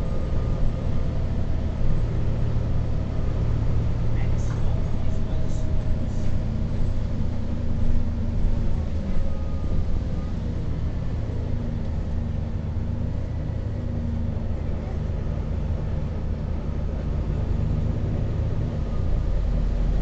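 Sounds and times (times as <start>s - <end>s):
bus engine running: 0.0s - 20.0s.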